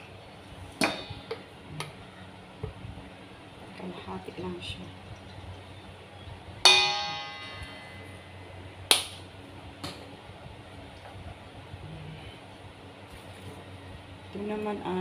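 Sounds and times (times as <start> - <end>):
metal bowl struck ringing: 6.6 - 8.4.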